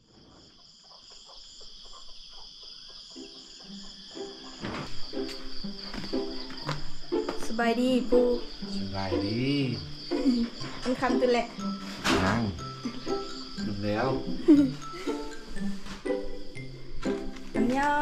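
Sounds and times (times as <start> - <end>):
crickets chirring: 0.0 - 18.0
people talking: 7.4 - 12.6, 13.6 - 15.2, 17.6 - 18.0.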